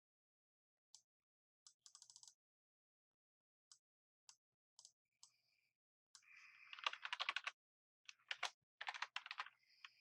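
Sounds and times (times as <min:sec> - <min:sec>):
typing on computer keyboard: 0:01.8 - 0:02.4, 0:06.7 - 0:10.0.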